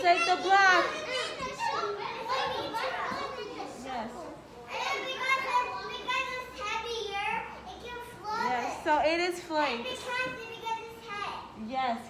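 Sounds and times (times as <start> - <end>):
young children talking: 0.0 - 9.0, 9.7 - 11.6.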